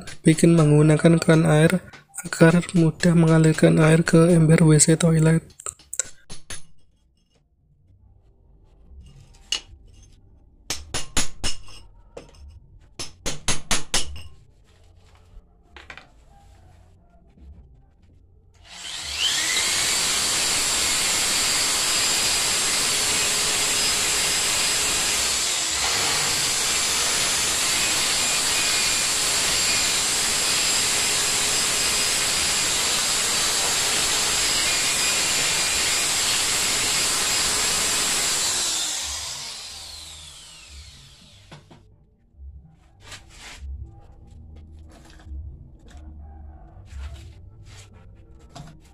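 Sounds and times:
hammer striking chisel: 6.2 - 7.0, 10.7 - 12.4, 13.0 - 14.3
electric drill whining: 18.6 - 41.8.

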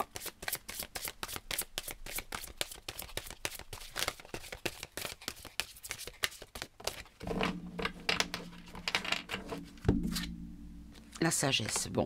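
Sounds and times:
cards being shuffled: 0.0 - 9.5.

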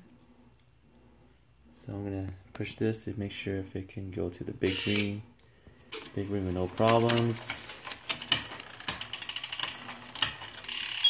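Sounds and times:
bicycle chain clicking and whirring: 5.9 - 11.0.

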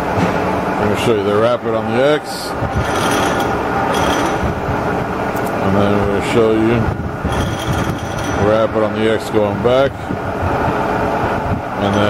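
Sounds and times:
milling machine power feed running: 0.8 - 12.0.

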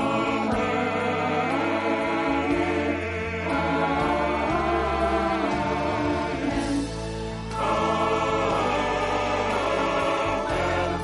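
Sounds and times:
mixed choir singing gospel: 0.0 - 11.0.

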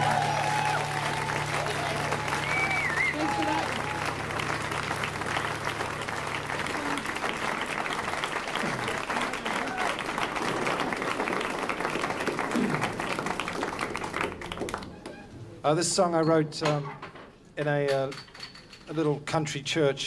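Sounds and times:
audience applauding: 0.0 - 15.1.

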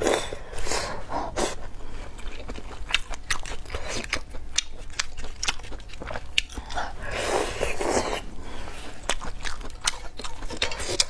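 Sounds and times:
person chewing crunchy food: 0.0 - 11.0.

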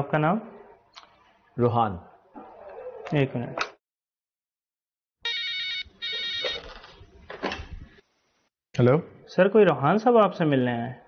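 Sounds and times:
desk telephone warbling ring: 5.2 - 6.7.

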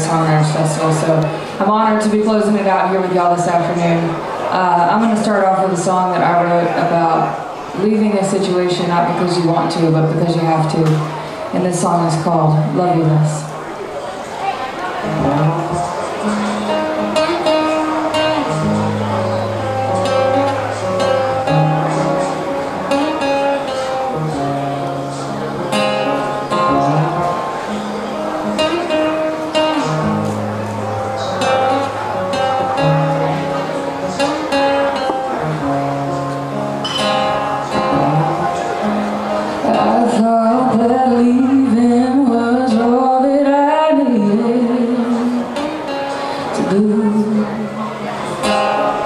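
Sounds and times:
acoustic guitar picking chords: 0.0 - 49.0
woman singing: 39.7 - 45.7, 46.5 - 47.8.

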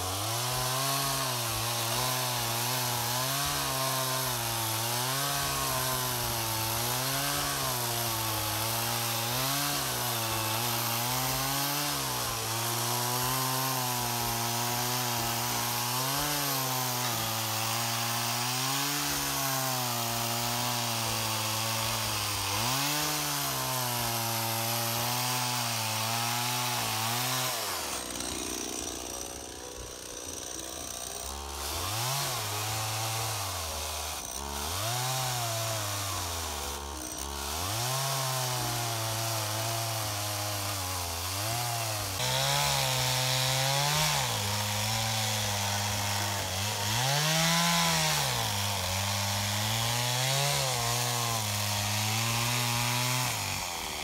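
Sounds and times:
chainsaw cutting through log: 0.0 - 54.0.

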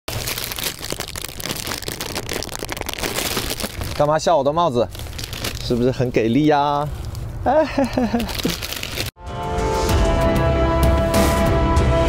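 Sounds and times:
plastic wrapper crinkling: 0.1 - 7.4, 8.0 - 9.2.

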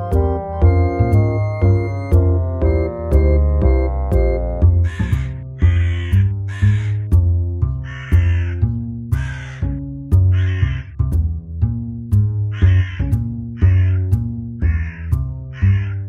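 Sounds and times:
keyboard music: 0.0 - 15.8
crow fledgling harsh calls: 4.8 - 7.1, 7.8 - 9.7, 10.3 - 10.9, 12.5 - 16.0.

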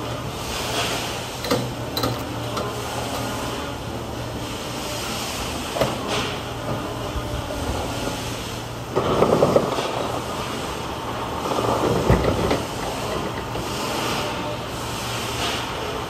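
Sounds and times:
low mechanical hum: 0.0 - 16.0.

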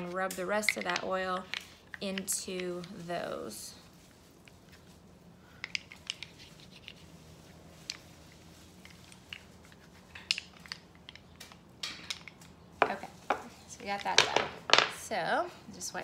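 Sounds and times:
hands handling wax candles: 0.0 - 15.0.

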